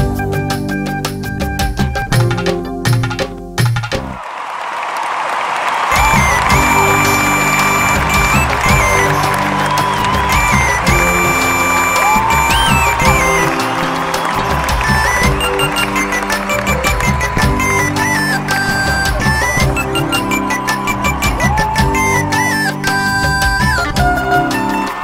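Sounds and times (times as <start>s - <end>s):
high lead melody with slides: 5.9s - 25.0s.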